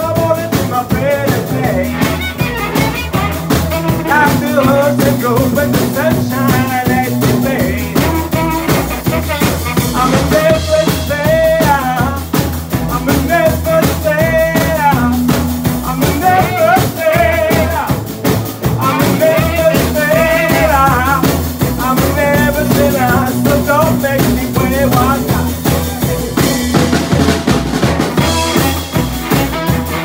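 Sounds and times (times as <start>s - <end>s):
man singing: 0.0s - 27.3s
plucked double bass: 0.0s - 29.5s
drum kit steady beat: 0.0s - 30.0s
electric guitar: 0.0s - 30.0s.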